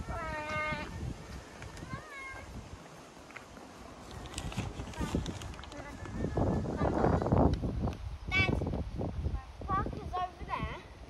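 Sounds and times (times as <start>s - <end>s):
wind rumble on microphone: 0.0s - 11.0s
child calling: 1.8s - 2.5s.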